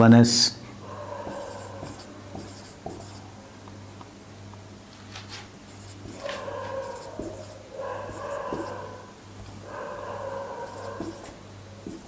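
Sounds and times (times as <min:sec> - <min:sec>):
marker scratching on whiteboard: 0:01.2 - 0:03.2, 0:05.3 - 0:09.6, 0:10.2 - 0:12.0.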